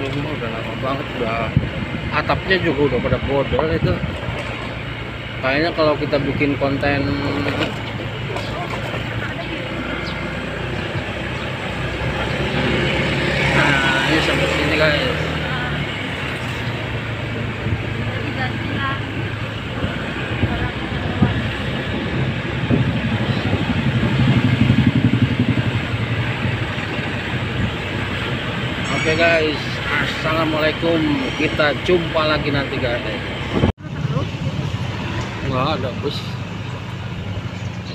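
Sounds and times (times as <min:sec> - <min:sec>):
motorcycle engine running: 0:00.0 - 0:33.1
road and wind rumble: 0:00.0 - 0:37.9
traffic nearby: 0:00.0 - 0:37.9.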